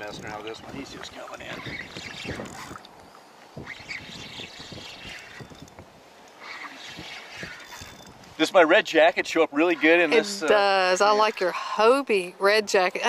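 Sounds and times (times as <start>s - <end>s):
water splashing and sloshing: 0.0s - 13.0s.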